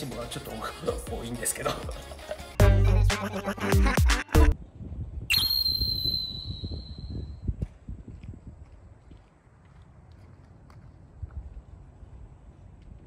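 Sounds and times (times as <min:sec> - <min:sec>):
high-pitched steady tone: 0:05.3 - 0:07.4.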